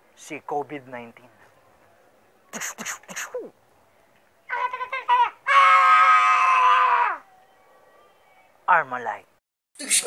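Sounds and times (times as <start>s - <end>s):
person yelling high-pitched: 4.5s - 7.2s.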